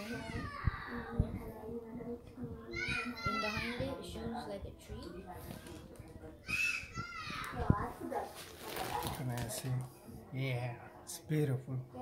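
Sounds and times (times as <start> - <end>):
child's high wordless voice: 0.0 - 4.9.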